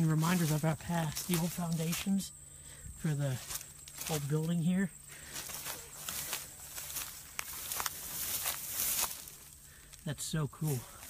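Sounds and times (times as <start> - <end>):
footsteps through dry leaves: 0.0 - 2.1, 3.3 - 4.6, 5.2 - 9.6.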